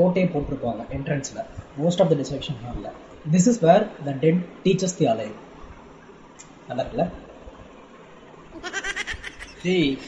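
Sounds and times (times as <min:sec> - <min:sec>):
high-pitched comic cry effect: 0:08.6 - 0:09.7.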